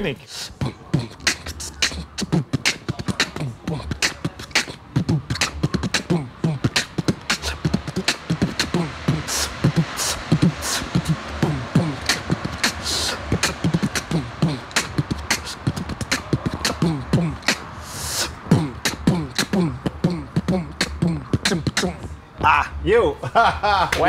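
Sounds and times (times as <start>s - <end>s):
man beatboxing: 0.0s - 22.8s.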